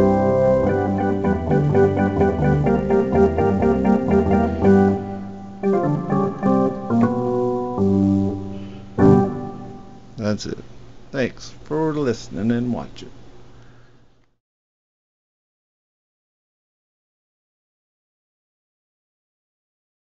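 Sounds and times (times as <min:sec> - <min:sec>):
synthesizer organ chord stabs: 0:00.0 - 0:10.2.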